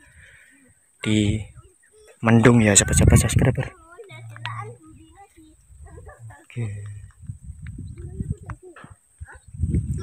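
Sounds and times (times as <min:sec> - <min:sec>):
footsteps on dirt road: 0:03.1 - 0:10.0.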